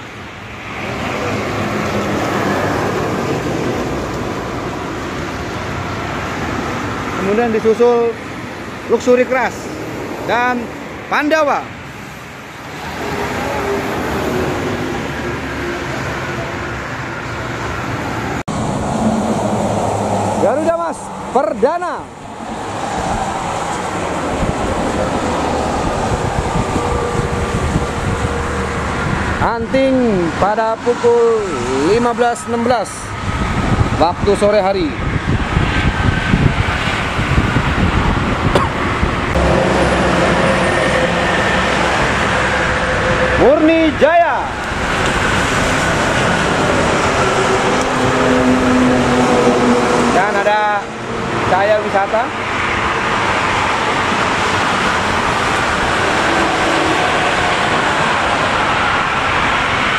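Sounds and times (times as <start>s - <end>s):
coach engine drone: 0.0s - 34.0s, 35.0s - 59.9s
traffic noise: 0.0s - 59.9s.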